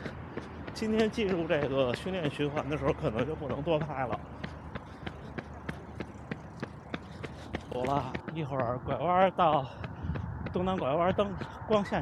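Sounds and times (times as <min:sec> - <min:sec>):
running footsteps on pavement: 0:00.0 - 0:12.0.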